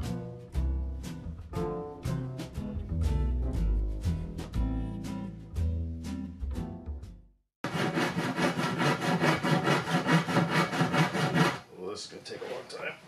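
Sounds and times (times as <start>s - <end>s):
handsaw cutting wood: 7.6s - 11.7s.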